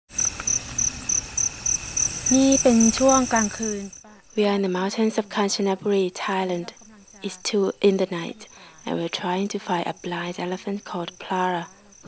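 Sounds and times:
high insect drone: 0:00.1 - 0:12.0
insects chirping: 0:00.1 - 0:12.0.

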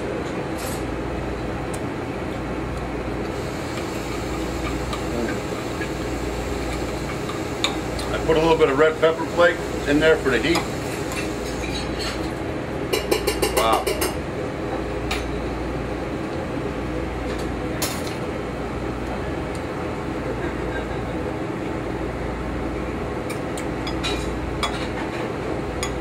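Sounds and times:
kitchen equipment hum: 0:00.0 - 0:26.0.

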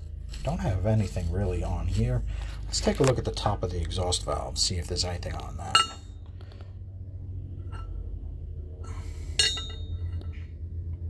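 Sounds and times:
steady low hum: 0:00.0 - 0:11.0
metal valve clinking: 0:09.4 - 0:10.2.

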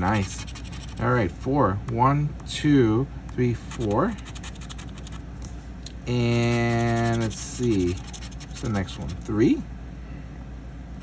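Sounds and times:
scratcher scraping scratch-off ticket: 0:00.0 - 0:01.2, 0:03.4 - 0:05.2, 0:06.1 - 0:09.4.

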